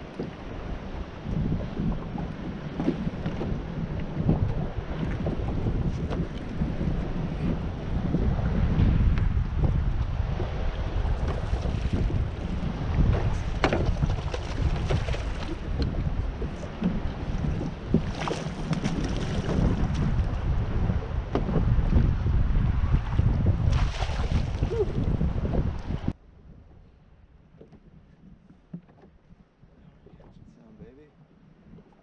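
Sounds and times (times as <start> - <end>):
water lapping at boat: 0.0 - 32.0
wind rumbling on microphone: 0.0 - 32.0
splashes: 13.3 - 15.7, 17.9 - 20.1, 23.6 - 24.9.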